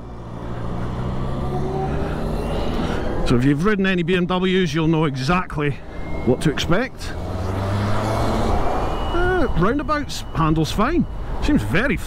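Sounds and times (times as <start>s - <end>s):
vehicle motor hum and rumble: 0.0s - 12.0s
faint high whine: 4.9s - 7.2s.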